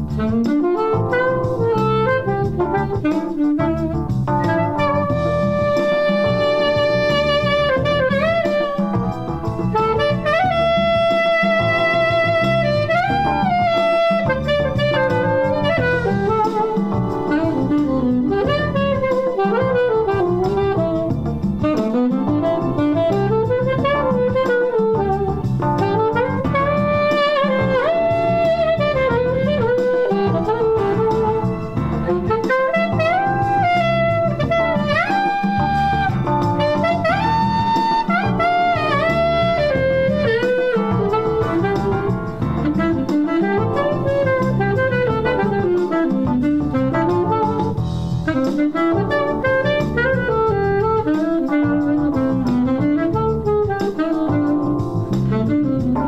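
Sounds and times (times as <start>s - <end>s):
alto saxophone improvising jazz: 0.0s - 56.0s
jazz backing track: 0.0s - 56.0s.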